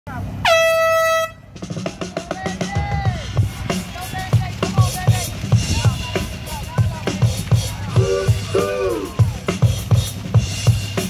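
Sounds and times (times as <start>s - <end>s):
air horn blast: 0.4s - 1.6s
music with drum beat: 0.5s - 11.0s.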